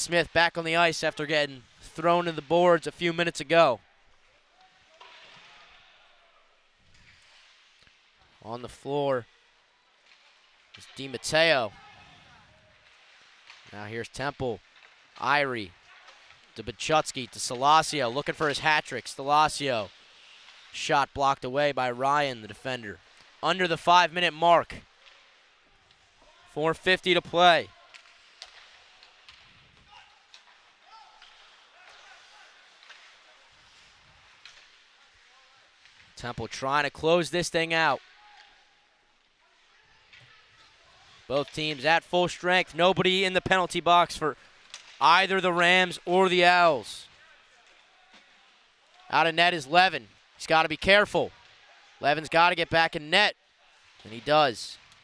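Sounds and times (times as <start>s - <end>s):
hockey sticks and puck clacking: 0.0s - 55.0s
skates scraping on ice: 6.8s - 8.5s, 9.2s - 38.8s.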